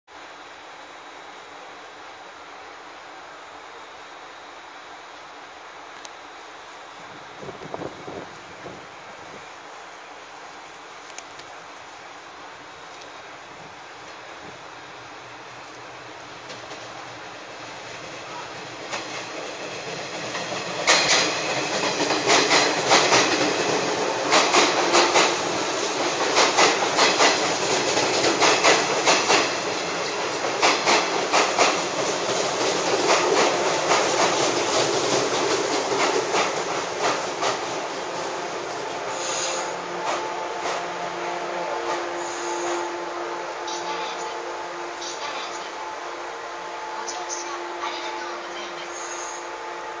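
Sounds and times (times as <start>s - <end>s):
electric train humming: 0.2s - 50.0s
train wheels clacking over rail joints: 18.8s - 41.0s.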